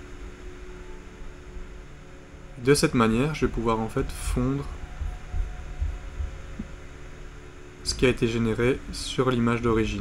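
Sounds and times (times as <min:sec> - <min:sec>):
faint low throb: 0:00.0 - 0:10.0
low hum: 0:00.0 - 0:10.0
man speaking: 0:02.6 - 0:04.8, 0:07.9 - 0:10.0.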